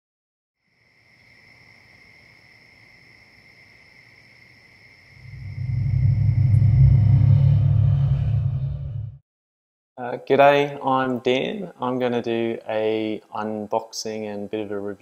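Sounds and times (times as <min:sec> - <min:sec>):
deep bass rumble: 0:05.2 - 0:09.2
high held drone tones: 0:05.2 - 0:09.2.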